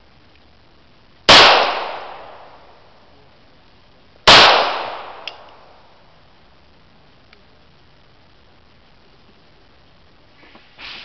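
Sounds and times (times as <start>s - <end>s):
pistol shots with echo: 1.3s - 2.8s, 4.3s - 5.8s.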